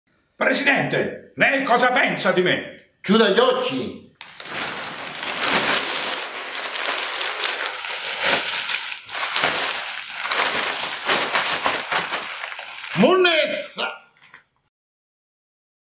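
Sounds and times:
plastic garbage bag rustling: 0:04.2 - 0:13.7.

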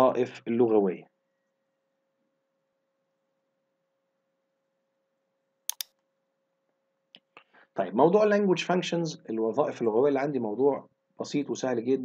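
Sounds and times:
computer mouse clicks: 0:05.7 - 0:06.0.

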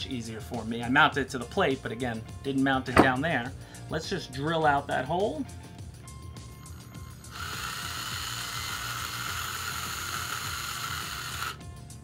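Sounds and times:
cordless drill drilling plastic: 0:06.7 - 0:11.6.

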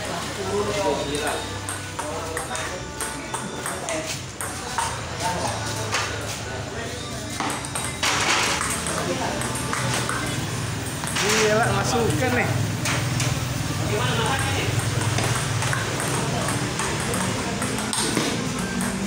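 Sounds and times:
ping pong ball clicks: 0:01.6 - 0:05.0, 0:07.4 - 0:11.4, 0:14.3 - 0:19.0.

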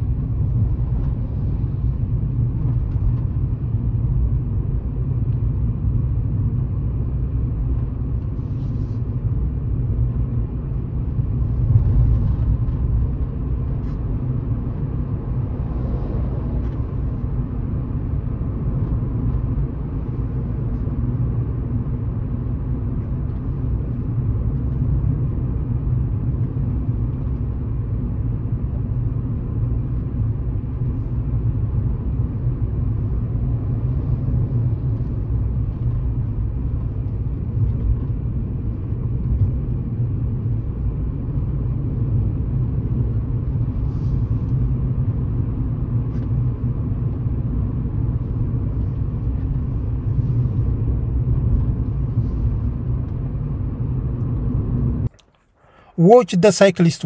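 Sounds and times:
car cabin tyre and engine rumble: 0:00.0 - 0:57.0.

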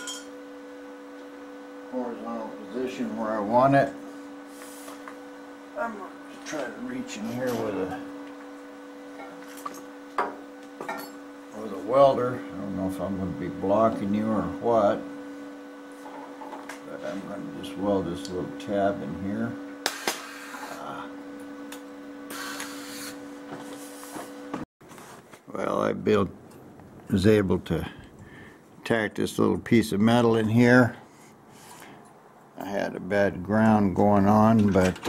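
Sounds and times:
electrical hum: 0:00.0 - 0:35.0.

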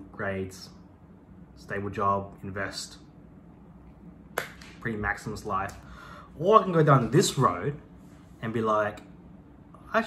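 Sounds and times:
man speaking: 0:06.4 - 0:09.1.

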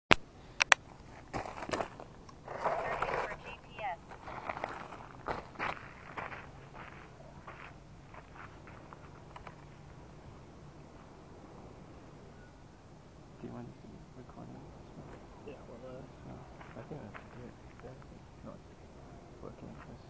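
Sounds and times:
footsteps on gravel: 0:01.0 - 0:09.3
drone scraping on gravel: 0:01.2 - 0:09.2.

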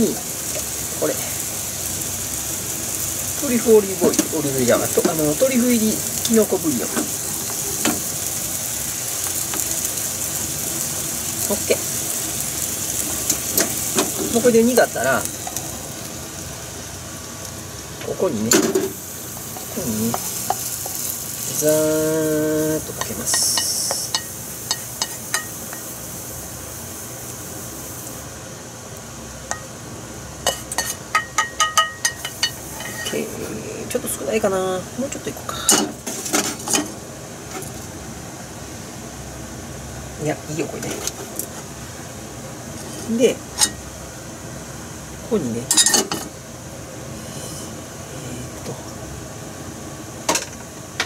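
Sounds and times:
sauce bubbling and sizzling: 0:00.0 - 0:51.0
steady hiss: 0:00.0 - 0:51.0
pan clinking against dish: 0:30.5 - 0:33.2.

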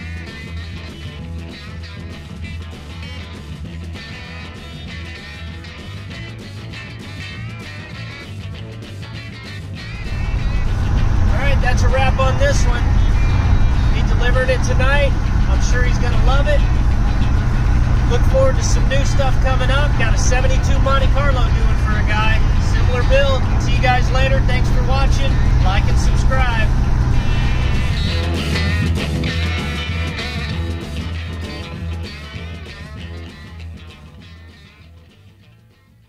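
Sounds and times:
guitar music: 0:00.0 - 0:36.0
engine and road rumble in cab: 0:09.8 - 0:31.0
person speaking: 0:10.0 - 0:26.8.

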